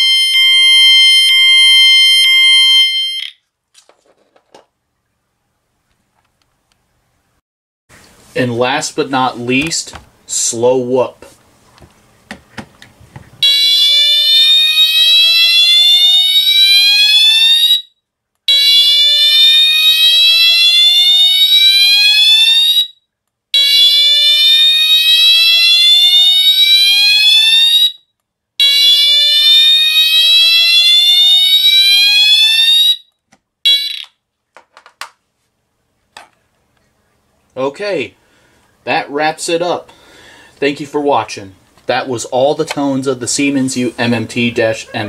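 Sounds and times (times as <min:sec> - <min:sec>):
fire alarm whoop tone: 0:00.0 - 0:03.4, 0:13.4 - 0:33.1, 0:33.7 - 0:34.1.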